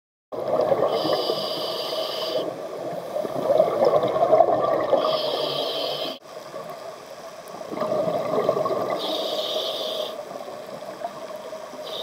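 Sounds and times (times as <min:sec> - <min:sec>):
exhaled bubbles rumbling: 0:00.4 - 0:01.2, 0:02.6 - 0:05.3, 0:07.5 - 0:09.1
regulator hissing inhale: 0:00.9 - 0:03.2, 0:05.0 - 0:06.2, 0:09.0 - 0:10.5, 0:11.8 - 0:12.0.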